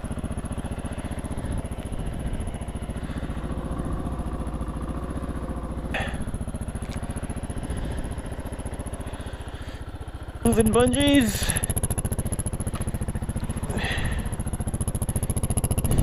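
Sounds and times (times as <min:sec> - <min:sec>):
motorcycle engine idling: 0:00.0 - 0:16.0.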